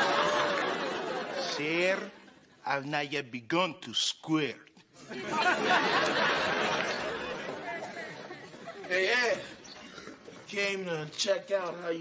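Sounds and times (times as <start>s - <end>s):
studio audience laughing: 0.0s - 2.5s, 5.0s - 9.2s.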